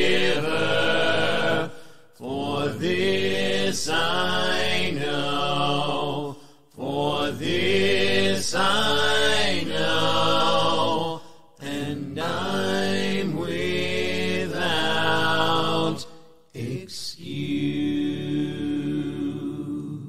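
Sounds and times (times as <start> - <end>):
a cappella hymn singing: 0.0 - 20.0.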